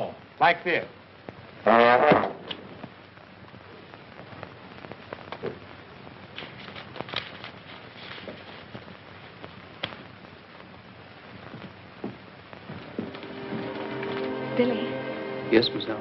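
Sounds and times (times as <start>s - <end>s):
film soundtrack crackle and hiss: 0.0s - 16.0s
trombone blast: 1.6s - 2.5s.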